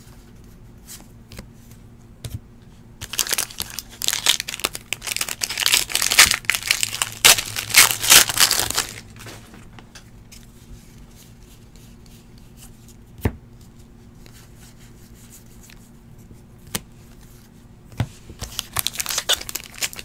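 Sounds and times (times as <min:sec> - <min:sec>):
foil wrapper tearing and crinkling: 0:03.0 - 0:09.1, 0:18.4 - 0:20.0.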